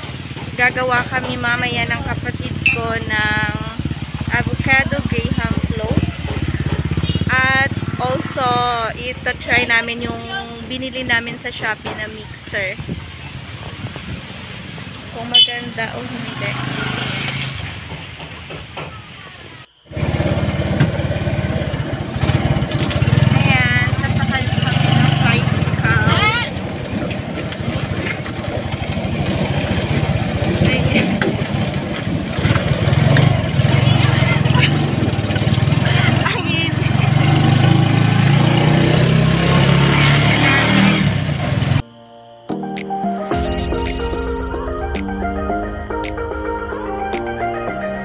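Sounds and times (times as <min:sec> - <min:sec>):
motorcycle engine running: 0:00.0 - 0:18.9, 0:19.9 - 0:41.8
road and wind noise: 0:00.0 - 0:42.0.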